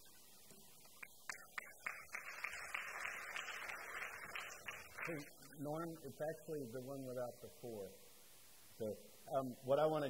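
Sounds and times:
audience applauding: 1.0s - 5.5s.

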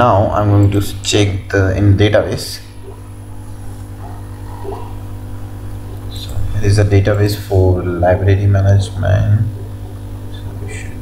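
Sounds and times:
low background hum: 0.0s - 11.0s
faint steady tones: 2.0s - 11.0s.

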